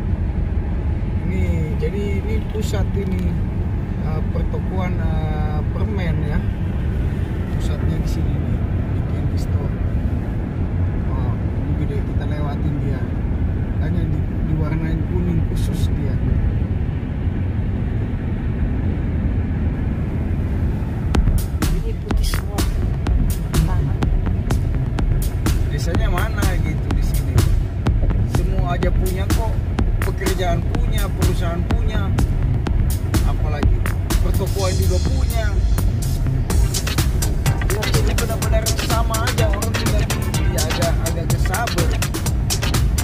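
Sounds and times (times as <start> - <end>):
car road and engine rumble: 0.0 - 43.0
music with beat and singing: 21.2 - 43.0.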